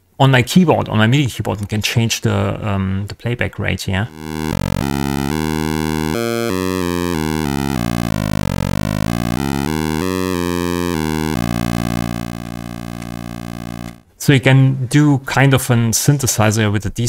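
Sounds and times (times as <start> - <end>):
held synthesizer note: 4.1 - 14.0
synthesizer tone jumping pitch: 4.1 - 14.0.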